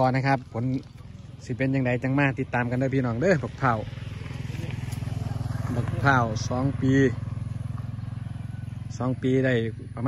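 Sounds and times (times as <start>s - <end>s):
small engine running: 0.0s - 10.0s.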